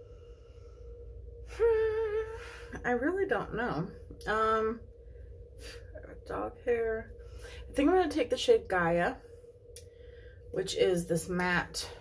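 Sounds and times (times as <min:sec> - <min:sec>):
faint steady tone: 0:00.0 - 0:12.0
woman humming: 0:01.5 - 0:02.7.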